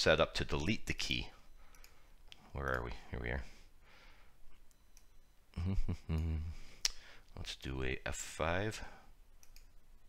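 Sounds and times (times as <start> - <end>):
computer mouse clicks: 1.7 - 2.8, 9.4 - 9.8.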